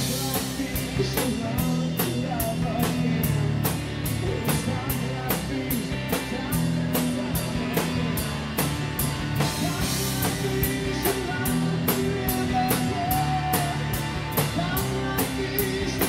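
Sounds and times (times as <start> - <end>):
drum kit beat: 0.0 - 16.0
rock band playing live: 0.0 - 16.0.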